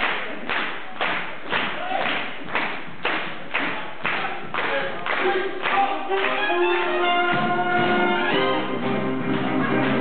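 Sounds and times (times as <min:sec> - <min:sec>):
jazz band steady beat: 0:06.0 - 0:10.0.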